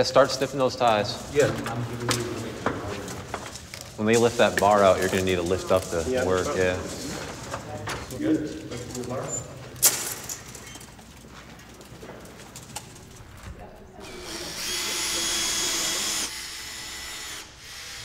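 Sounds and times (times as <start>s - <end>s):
cordless drill driving a screw: 14.0s - 18.0s.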